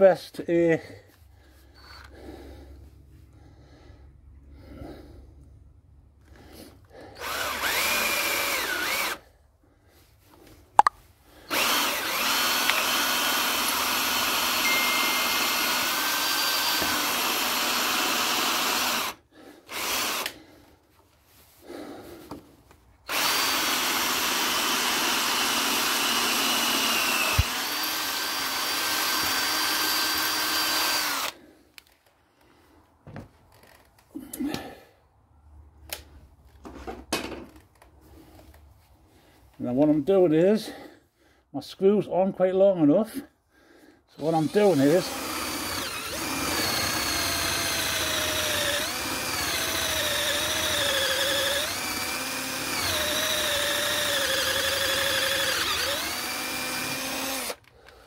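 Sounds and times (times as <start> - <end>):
cordless drill whining: 1.6 - 2.4, 6.2 - 9.3, 11.4 - 20.5, 23.0 - 32.0, 44.2 - 58.0.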